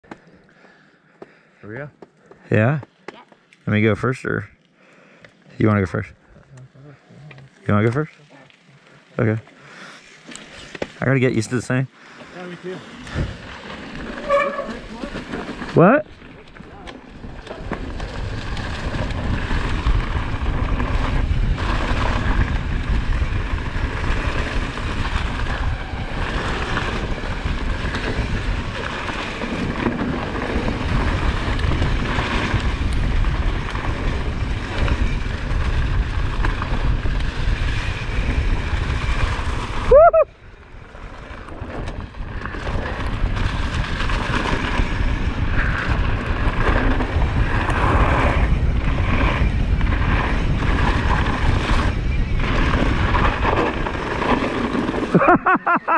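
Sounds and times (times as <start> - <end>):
mountain bike rumble and rattle: 2.4 - 55.9
wind buffeting microphone: 17.1 - 54.8.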